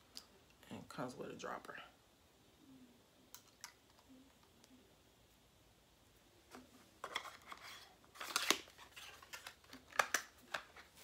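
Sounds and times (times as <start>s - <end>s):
packaging rustling and scraping: 6.5s - 11.0s.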